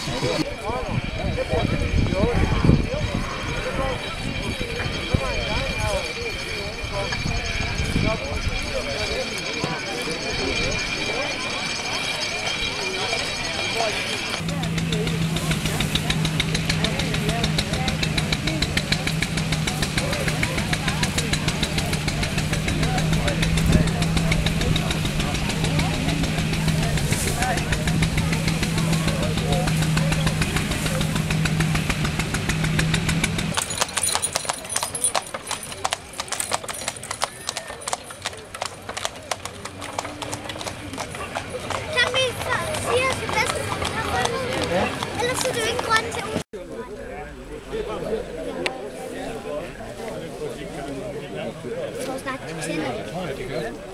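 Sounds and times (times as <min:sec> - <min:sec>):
horse hooves clattering: 0:00.0 - 0:46.4
people's voices: 0:00.0 - 0:53.9
machine droning and ticking: 0:01.7 - 0:33.6.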